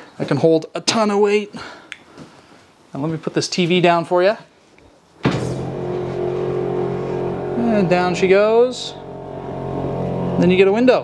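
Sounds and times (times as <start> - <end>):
electric lift motor humming: 5.3 - 11.0.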